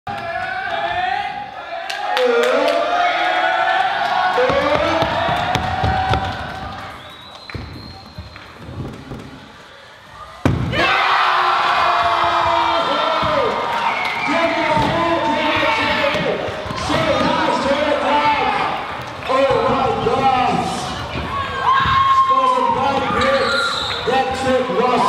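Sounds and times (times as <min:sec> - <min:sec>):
kids shouting and cheering: 0:21.0 - 0:24.2.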